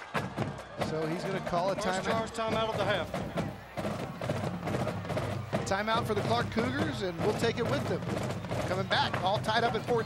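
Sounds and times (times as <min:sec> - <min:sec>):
quick drum hits: 0:00.0 - 0:10.0
low background din: 0:00.1 - 0:10.0.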